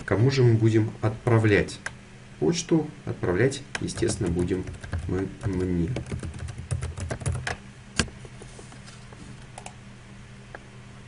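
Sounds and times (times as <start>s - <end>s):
keyboard typing: 3.8s - 7.6s.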